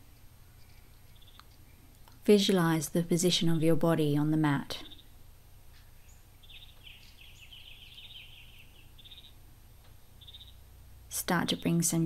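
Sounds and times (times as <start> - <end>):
steady low hum: 0.0 - 12.0
faint bird trill: 0.6 - 1.8, 4.8 - 5.2, 5.8 - 9.4, 10.2 - 10.7.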